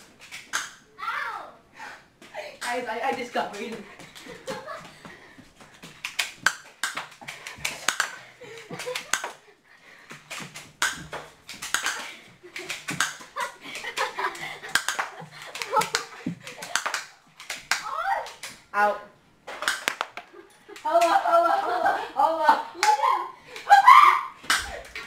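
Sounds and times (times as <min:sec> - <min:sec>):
footsteps on hard floor: 0:03.2 - 0:07.9, 0:15.2 - 0:16.7
pellets knocking on surfaces: 0:10.1 - 0:18.6, 0:19.5 - 0:20.3.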